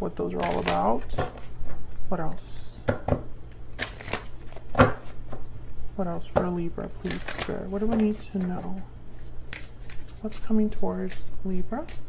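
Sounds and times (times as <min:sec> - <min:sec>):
cards being shuffled by hand: 0:00.4 - 0:01.9, 0:06.9 - 0:12.0.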